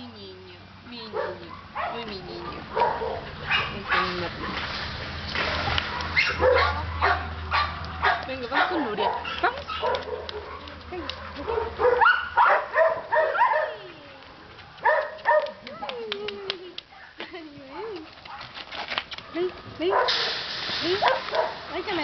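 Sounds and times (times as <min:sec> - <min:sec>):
dogs barking and yipping: 0:01.1 - 0:04.8, 0:05.6 - 0:16.0, 0:19.2 - 0:22.0.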